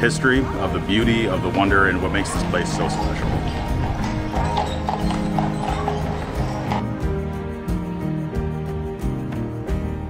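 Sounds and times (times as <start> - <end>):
background music with sustained tones: 0.0 - 10.0
horse hooves clip-clopping on pavement: 1.6 - 7.2.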